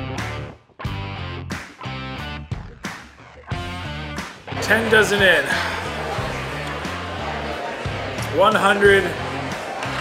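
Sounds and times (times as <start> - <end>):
guitar music: 0.0 - 8.3
bass line: 0.0 - 8.4.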